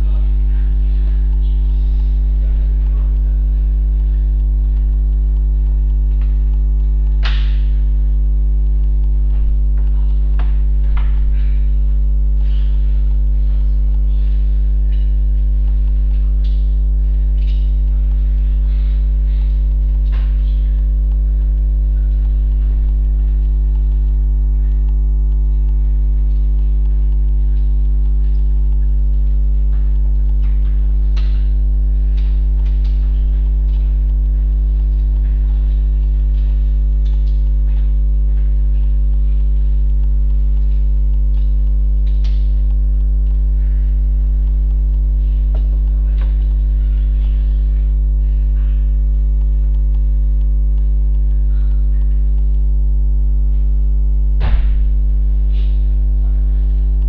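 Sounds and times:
electrical mains hum: 0.0 - 57.0.

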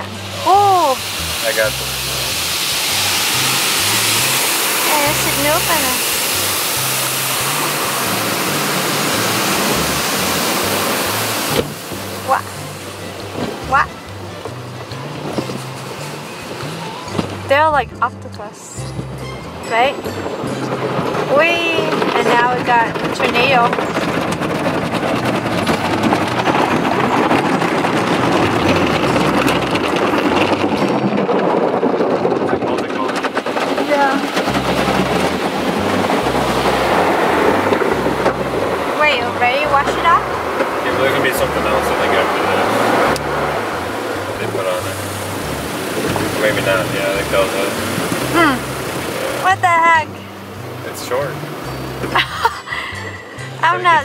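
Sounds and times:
water spray and brushes: 0.0 - 17.7, 32.9 - 50.3
music with bass line: 0.0 - 23.8, 34.3 - 54.0.

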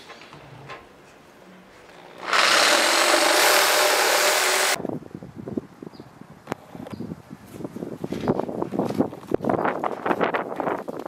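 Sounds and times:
power tool cutting wood: 2.2 - 4.8.

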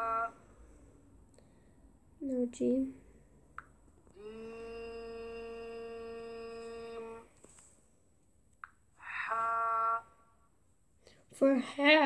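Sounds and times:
person humming steady note: 0.0 - 0.6, 4.1 - 7.4, 9.0 - 10.3.

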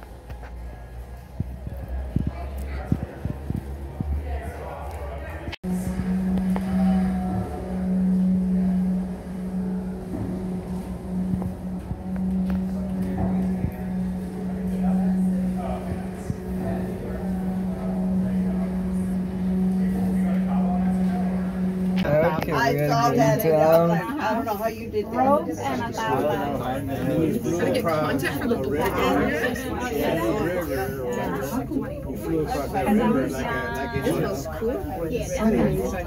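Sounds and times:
faint passenger voices: 0.0 - 36.0
low cabin rumble: 0.0 - 36.0
steady low hum: 0.0 - 36.0.

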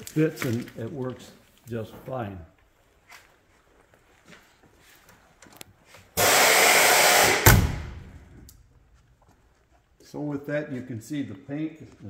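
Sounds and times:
rushing hiss: 6.2 - 7.5.

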